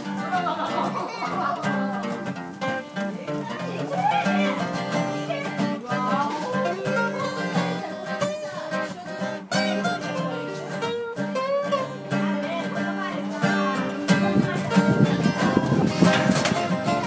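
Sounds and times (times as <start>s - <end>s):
acoustic guitar duet: 0.0s - 17.0s.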